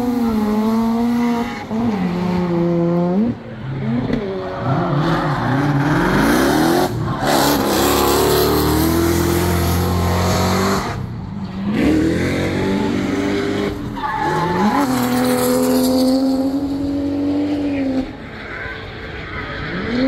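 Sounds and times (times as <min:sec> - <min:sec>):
car engines revving: 0:00.0 - 0:20.0.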